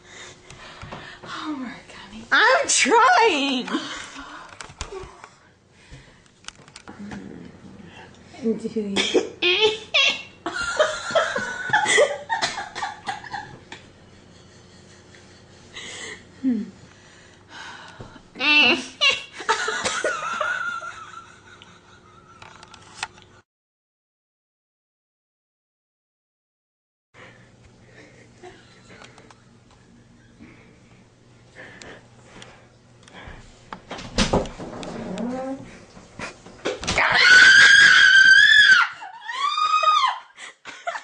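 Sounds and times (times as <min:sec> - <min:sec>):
woman laughing: 0:08.9 - 0:16.8, 0:18.6 - 0:22.6, 0:37.2 - 0:41.0
person screaming: 0:37.0 - 0:40.2.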